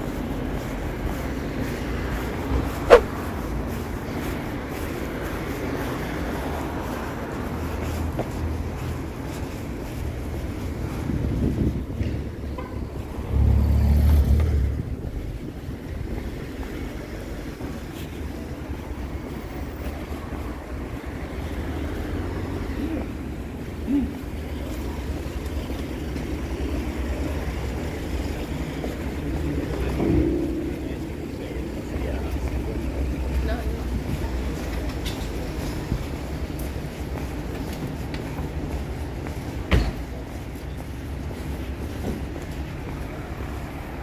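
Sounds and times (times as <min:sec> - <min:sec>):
passers-by voices: 0:00.0 - 0:44.0
road traffic rumble: 0:00.0 - 0:44.0
loud low rumble: 0:29.6 - 0:32.0.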